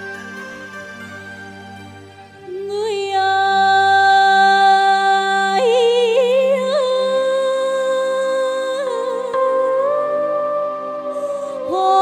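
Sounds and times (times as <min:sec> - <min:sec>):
folk melody with trills: 0:00.0 - 0:02.9.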